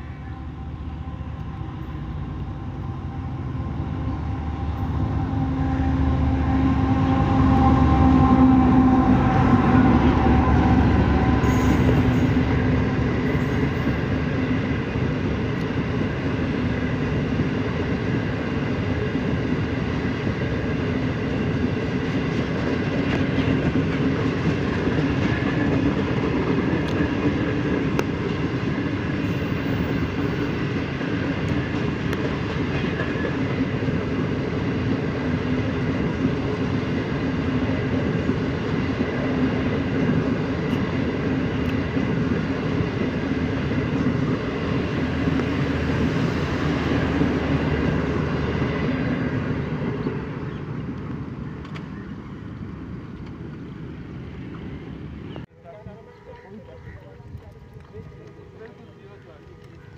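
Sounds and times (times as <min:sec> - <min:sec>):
diesel locomotive engine hum: 0:00.0 - 0:59.9
train coaches rolling on rails: 0:00.0 - 0:59.9.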